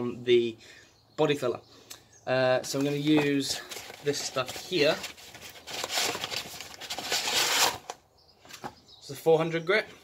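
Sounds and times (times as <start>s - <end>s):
sandpaper rustling and scraping: 2.8s - 7.9s.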